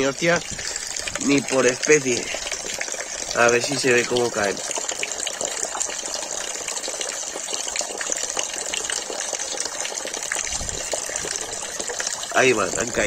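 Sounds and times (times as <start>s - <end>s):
water pouring into a pond: 0.0s - 13.0s.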